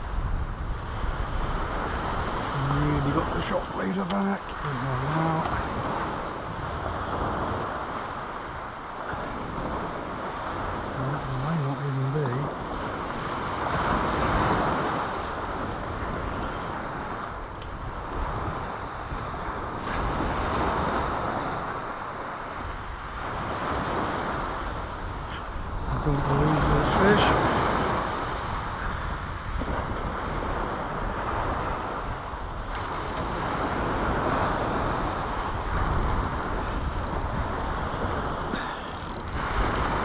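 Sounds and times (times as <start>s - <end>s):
sea waves breaking on shore: 0.0s - 40.0s
wind noise on microphone: 0.0s - 40.0s.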